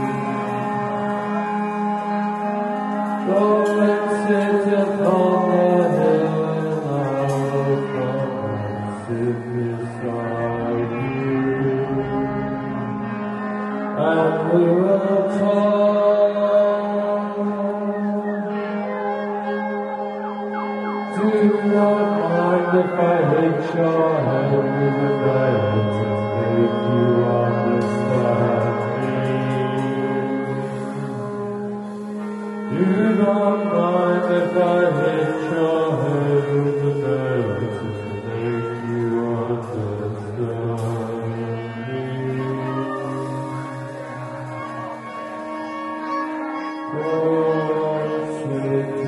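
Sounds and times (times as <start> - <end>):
live band droning chord: 0.0 - 49.0
man singing chant-like: 0.0 - 49.0.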